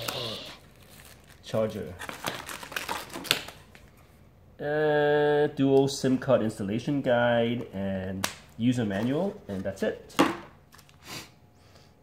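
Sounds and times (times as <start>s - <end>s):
paper and cardboard rustling: 0.0s - 4.0s.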